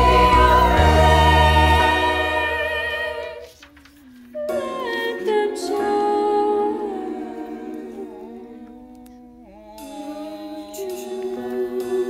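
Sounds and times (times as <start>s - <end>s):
choir holding a chord: 0.0s - 3.5s, 4.5s - 8.7s, 10.1s - 12.0s.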